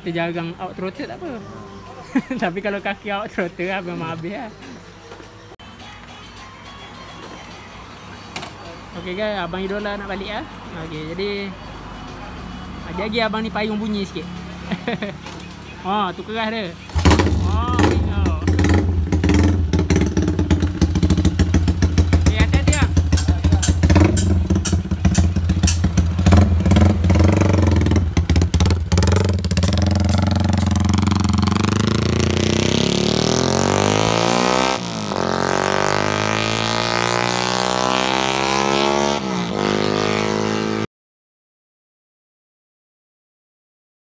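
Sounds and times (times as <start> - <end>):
motorcycle engine revving with crackle: 16.9 - 38.4
motorcycle accelerating away: 16.9 - 40.9.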